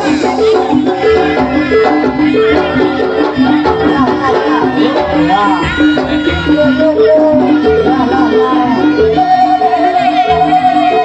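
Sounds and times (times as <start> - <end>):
metallic gamelan notes: 0.0 - 11.0.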